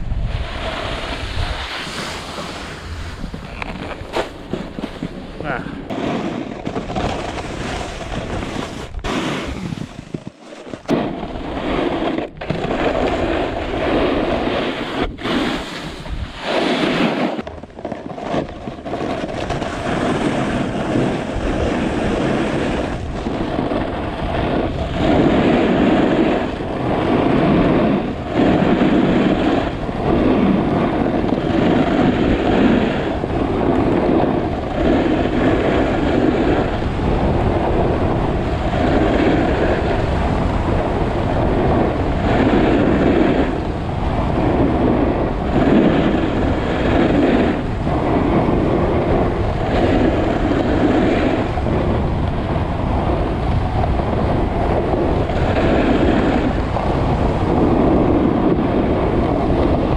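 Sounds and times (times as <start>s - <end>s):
snowboard scraping over snow: 0.0s - 59.9s
wind on microphone: 0.0s - 59.9s.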